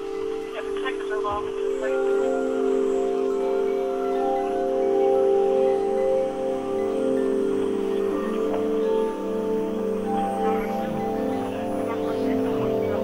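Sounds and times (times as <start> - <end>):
ambient drone music: 0.0 - 13.0
higher ringing tones: 0.0 - 13.0.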